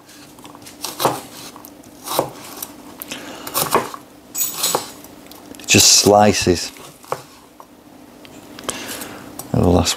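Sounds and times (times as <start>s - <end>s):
knife chopping on plastic board: 0.8s - 2.5s, 3.5s - 4.0s, 7.1s - 7.3s.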